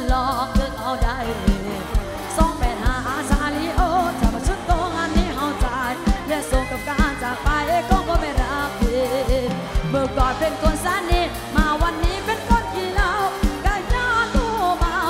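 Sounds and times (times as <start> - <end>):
person singing: 0.0 - 15.0
steady drum beat: 0.0 - 15.0.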